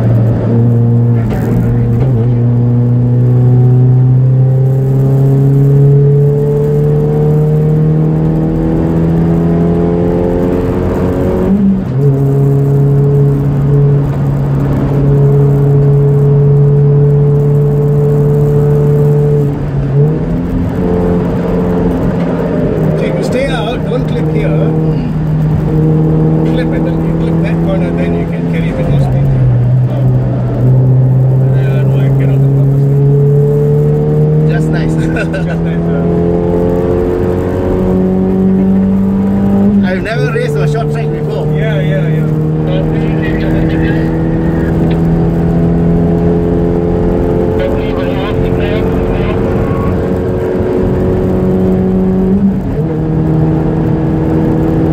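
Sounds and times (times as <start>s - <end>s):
race car engine revving: 0.0s - 54.9s.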